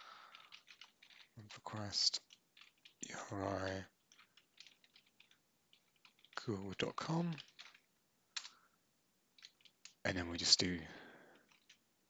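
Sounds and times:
faint keyboard typing: 0.0s - 8.7s, 9.3s - 10.2s, 10.9s - 11.8s.

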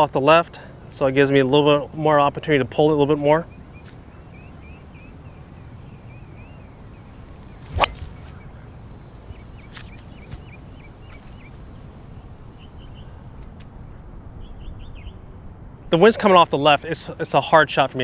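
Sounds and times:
birds chirping: 0.8s - 17.4s
golf ball struck crack: 7.6s - 11.4s.

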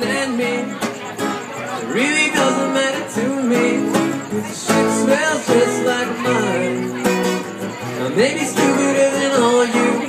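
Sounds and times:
man singing into microphone: 0.0s - 7.1s, 7.8s - 10.0s
acoustic guitar strumming: 0.0s - 10.0s.

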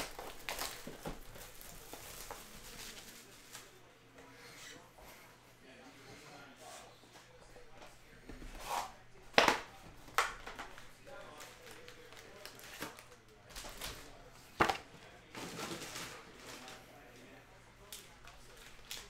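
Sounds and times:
foil packs crinkling and rustling: 0.0s - 3.8s, 10.2s - 14.3s, 15.0s - 19.0s.

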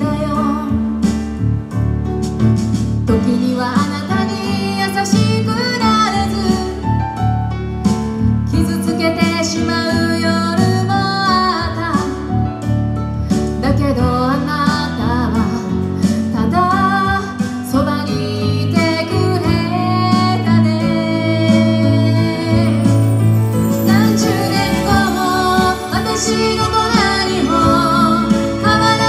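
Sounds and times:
woman singing into a microphone: 0.0s - 1.2s, 3.0s - 7.2s, 8.5s - 12.6s, 13.5s - 29.0s
instrumental accompaniment: 0.4s - 29.0s.

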